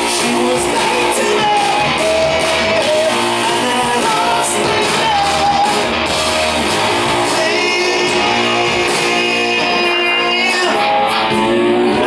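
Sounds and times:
voices singing held notes: 0.0s - 6.1s, 6.8s - 12.0s
drums: 0.0s - 12.0s
electric guitar: 0.0s - 12.0s.

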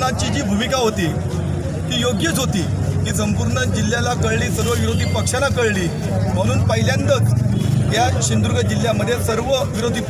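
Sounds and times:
man speaking into microphones: 0.0s - 10.0s.

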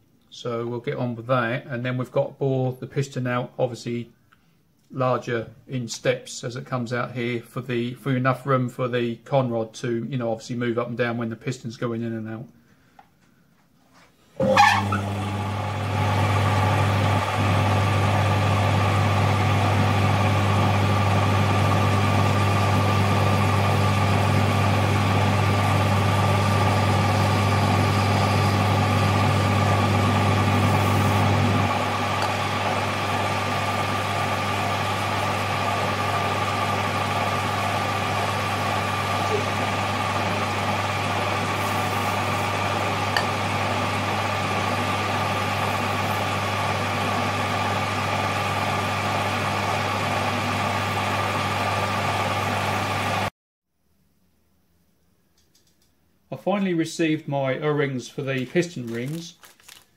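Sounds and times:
metal lathe motor hum and whine: 14.4s - 53.3s.

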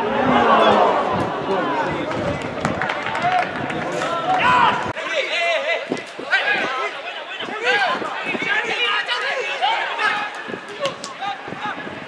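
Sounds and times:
players shouting: 0.0s - 12.0s.

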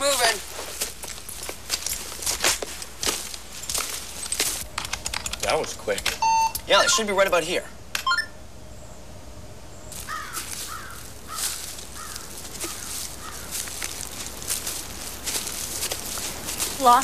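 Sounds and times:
footsteps through undergrowth: 0.0s - 4.8s, 9.9s - 17.0s
short electronic computer beeps: 6.2s - 7.2s, 8.0s - 8.4s.

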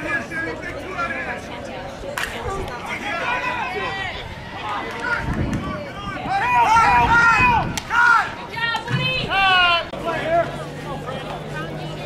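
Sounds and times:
people shouting and whooping: 2.6s - 10.5s.

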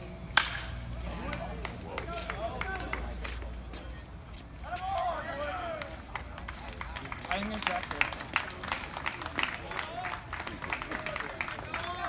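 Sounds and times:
bat cracking ball: 0.3s - 0.8s
spectators shouting and cheering: 9.3s - 12.0s.

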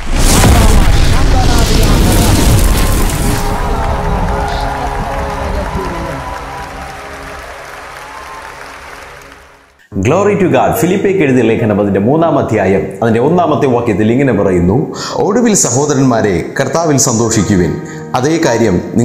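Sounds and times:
loud explosion boom: 0.0s - 6.8s.

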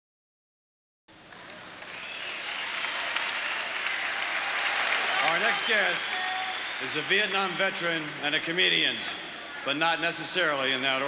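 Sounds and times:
audience applause: 1.3s - 9.7s.

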